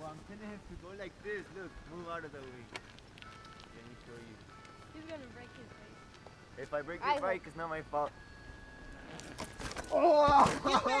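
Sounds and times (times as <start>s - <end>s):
bicycle rustling through grass: 0.0s - 5.9s
bicycle clicks and rattles: 1.0s - 5.2s.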